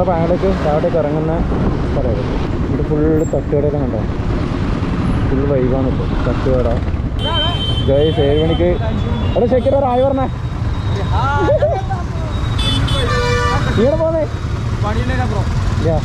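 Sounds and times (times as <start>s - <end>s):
man talking: 0.0s - 4.1s, 7.8s - 10.4s, 13.6s - 16.0s
road and wind noise: 0.0s - 16.0s.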